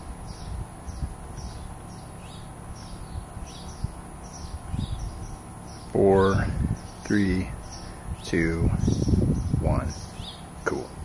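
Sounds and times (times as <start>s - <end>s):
low background rumble: 0.0s - 11.0s
small bird chirping: 0.0s - 11.0s.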